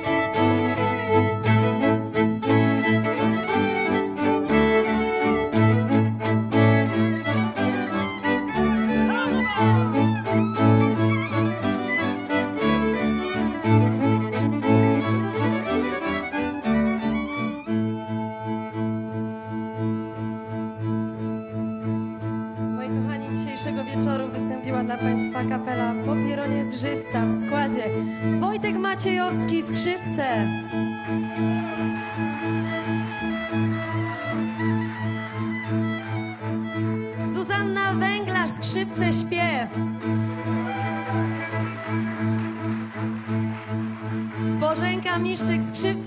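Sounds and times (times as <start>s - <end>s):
folk string band playing: 0.0s - 46.0s.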